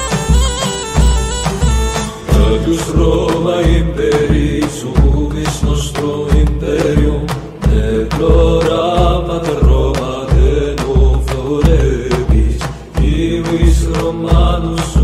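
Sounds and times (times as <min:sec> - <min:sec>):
heavy low drum beat: 0:00.0 - 0:15.0
sharp percussion hits: 0:00.0 - 0:15.0
man singing chant-like: 0:02.3 - 0:15.0.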